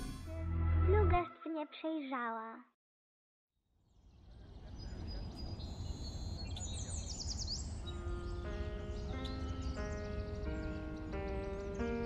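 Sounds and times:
birds chirping: 3.9s - 12.0s
soft music of held tones: 7.7s - 12.0s.

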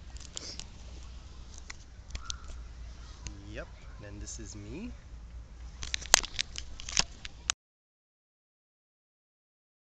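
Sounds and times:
camera handling clicks and rubs: 0.1s - 2.6s, 5.8s - 7.6s.

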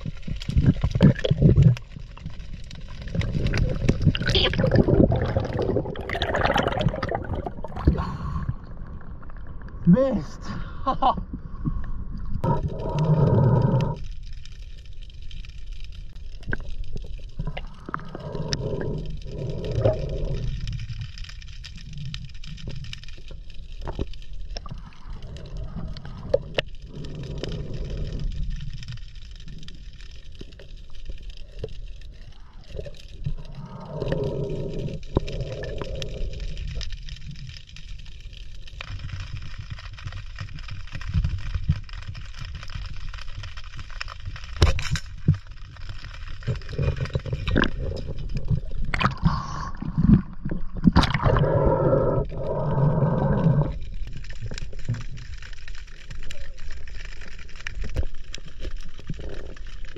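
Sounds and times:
low underwater rumble: 0.0s - 10.1s, 11.0s - 59.9s
muffled underwater gurgling: 0.0s - 10.4s, 46.3s - 55.4s.

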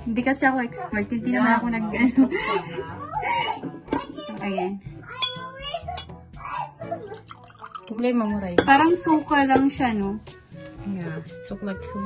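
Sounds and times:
drinking glasses clinking: 5.2s - 6.2s, 7.2s - 8.9s.

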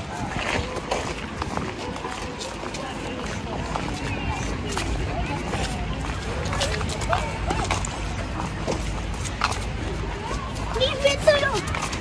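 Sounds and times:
faint voices: 0.0s - 12.0s
footsteps on a path: 0.0s - 12.0s.

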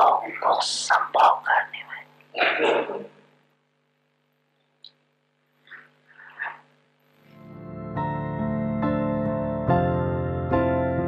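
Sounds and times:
faint steady hum: 0.0s - 9.4s.

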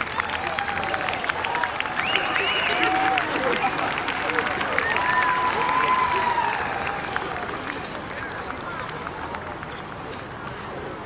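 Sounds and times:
audience applause: 0.0s - 11.0s
crowd chatter: 0.0s - 11.0s
long high call from crowd: 0.0s - 11.0s.

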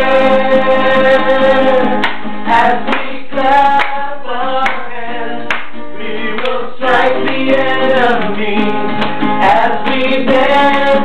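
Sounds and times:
acoustic guitar: 0.0s - 11.0s
group singing gospel song: 0.0s - 11.0s
hands clapping: 1.2s - 10.8s.

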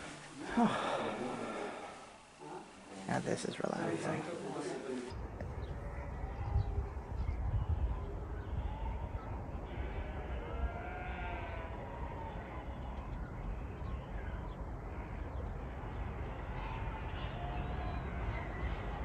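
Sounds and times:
sheep bleating: 9.6s - 13.1s.

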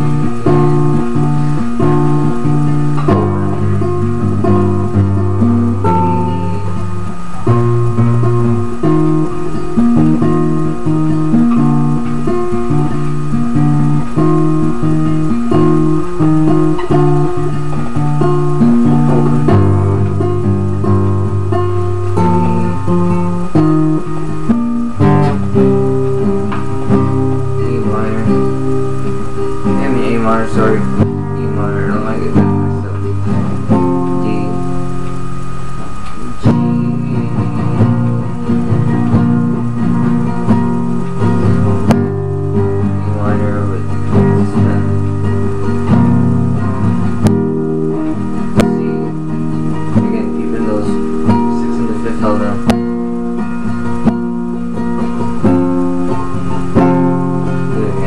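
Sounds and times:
classical guitar fingerpicking: 0.0s - 58.0s.

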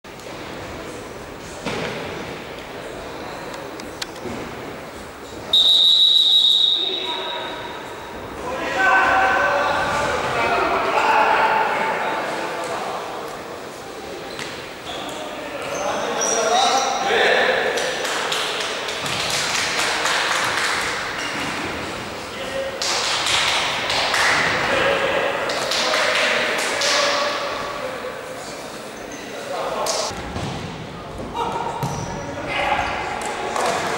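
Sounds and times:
echoing indistinct voices: 0.3s - 33.9s
referee's whistle long blast: 5.5s - 7.6s.

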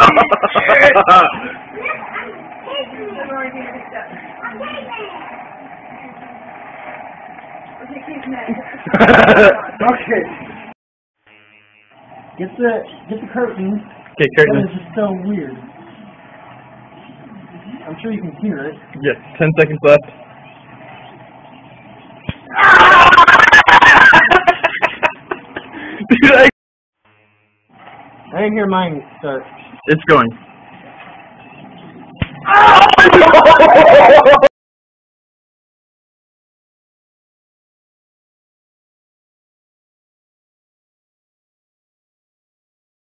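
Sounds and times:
fan motor humming: 0.0s - 10.7s, 11.4s - 26.2s, 27.0s - 34.4s
loud vocal outburst: 22.5s - 24.0s, 32.4s - 33.6s.

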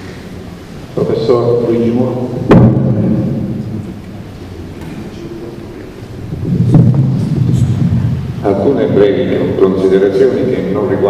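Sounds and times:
microphone handling rumble: 2.2s - 9.7s
knock on microphone: 2.5s - 3.0s, 6.4s - 7.8s.

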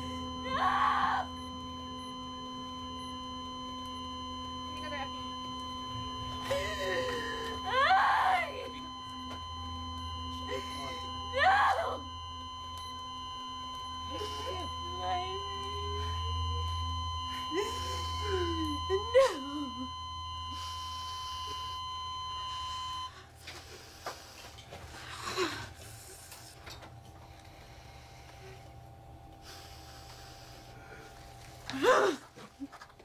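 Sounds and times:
flatline alarm tone: 0.0s - 32.9s.

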